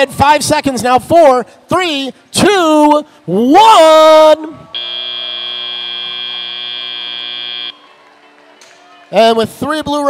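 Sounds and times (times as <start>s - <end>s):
electronic buzzer tone: 4.8s - 7.8s.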